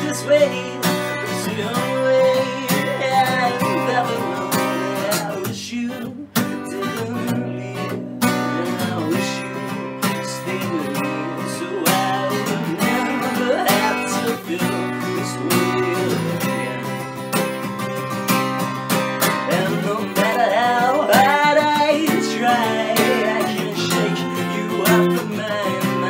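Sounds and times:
man singing: 0.0s - 18.2s, 18.9s - 26.0s
acoustic guitar strumming: 0.0s - 26.0s.

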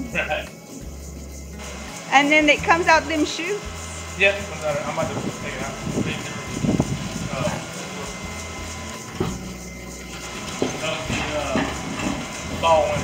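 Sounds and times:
machinery humming: 0.0s - 13.0s.

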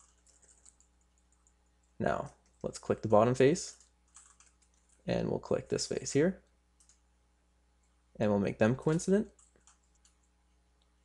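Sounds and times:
faint clicks: 6.4s - 7.0s.

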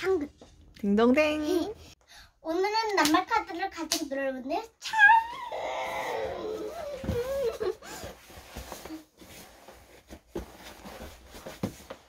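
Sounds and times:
girl's wordless vocal cry: 4.9s - 7.8s.

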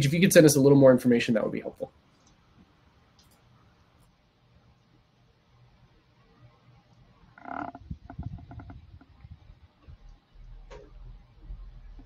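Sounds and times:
soft clicks: 2.2s - 4.1s.

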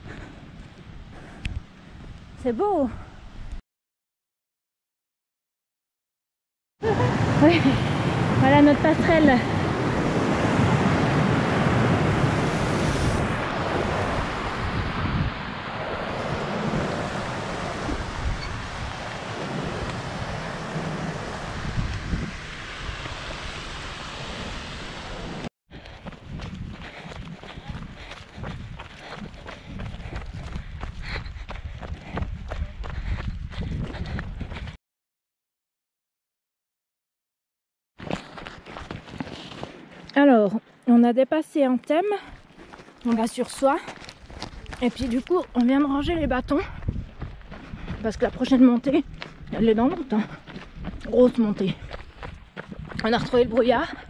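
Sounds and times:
rushing mountain stream: 6.9s - 25.5s
wind on microphone: 6.9s - 34.8s, 44.2s - 54.0s.

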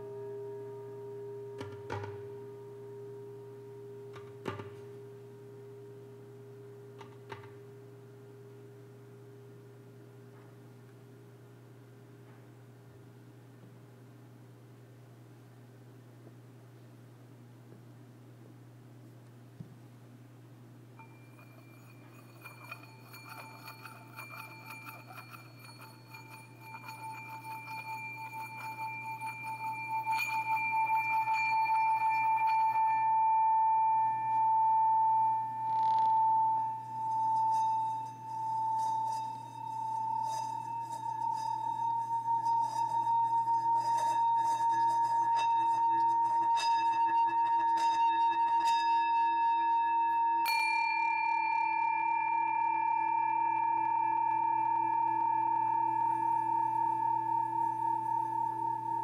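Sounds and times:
singing bowl ringing tone: 0.0s - 9.2s, 21.0s - 59.0s
bowl being struck: 0.0s - 10.3s, 21.0s - 59.0s.

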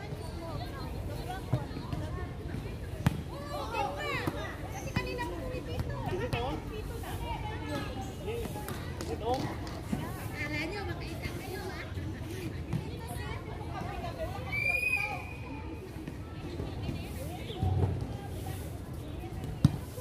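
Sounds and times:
players calling out and chattering: 0.0s - 20.0s.

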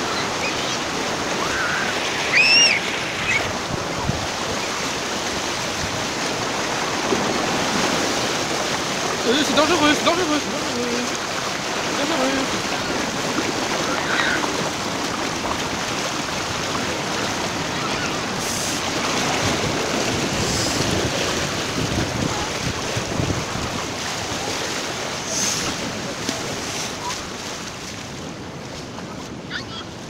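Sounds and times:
surf washing across sandy beach: 0.0s - 30.0s.

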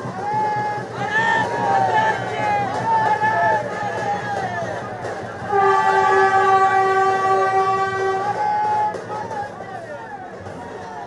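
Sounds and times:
crowd shouting: 0.0s - 11.0s
train horn chord: 5.4s - 9.0s.

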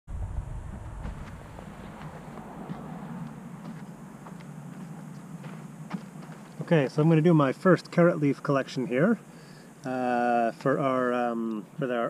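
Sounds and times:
low rumble: 0.0s - 6.6s
footsteps on loose soil: 0.1s - 7.2s
steady outdoor hiss: 0.1s - 12.0s.

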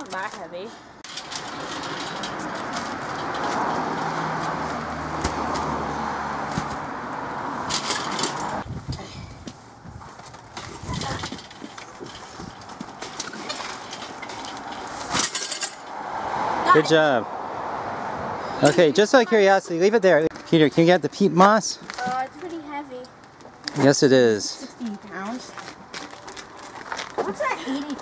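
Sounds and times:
metal garden wagon rattling: 1.0s - 4.4s, 7.6s - 9.3s, 10.2s - 15.9s
passing vehicle rushing hum: 1.1s - 8.7s, 14.6s - 20.2s.

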